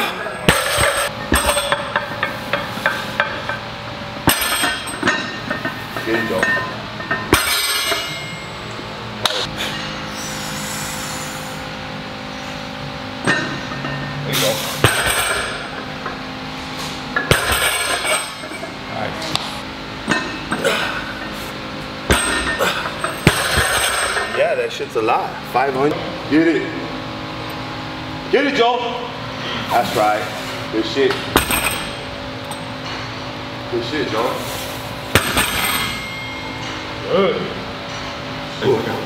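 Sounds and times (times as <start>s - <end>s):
metallic clanks of weight plates: 4.3s - 8.5s.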